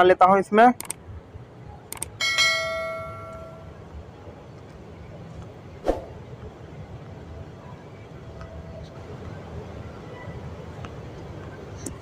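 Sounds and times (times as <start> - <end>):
bright bell ding: 2.2 - 3.7.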